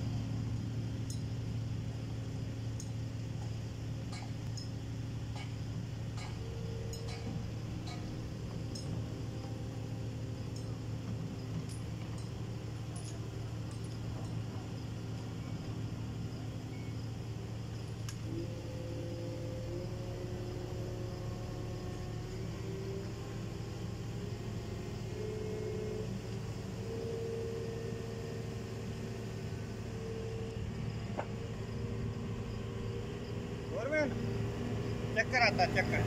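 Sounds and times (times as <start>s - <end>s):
diesel engine droning: 0.0s - 36.0s.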